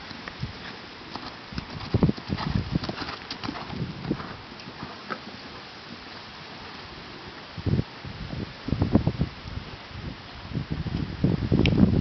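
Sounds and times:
horse hoofbeats on sand: 0:01.1 - 0:05.3.

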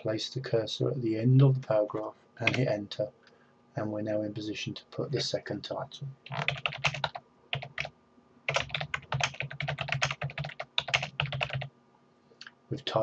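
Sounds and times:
computer keyboard typing: 0:02.4 - 0:02.7, 0:06.2 - 0:07.9, 0:08.5 - 0:11.7.

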